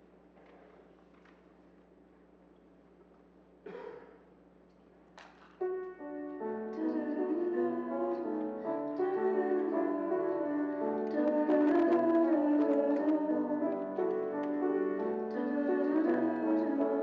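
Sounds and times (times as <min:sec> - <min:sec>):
piano chords: 0:05.6 - 0:17.0.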